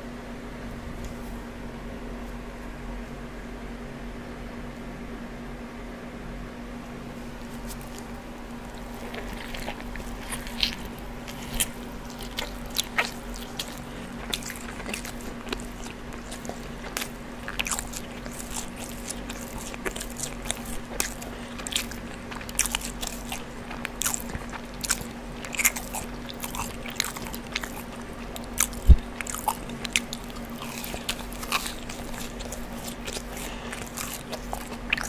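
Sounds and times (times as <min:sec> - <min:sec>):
faint steady hum: 0:00.0 - 0:35.0
chewing with mouth clicks: 0:07.4 - 0:35.0.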